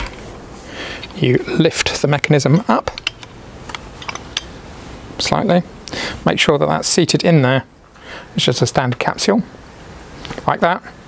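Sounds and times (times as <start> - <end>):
low steady background noise: 0.0 - 11.0
metal lever clicks: 2.8 - 4.5.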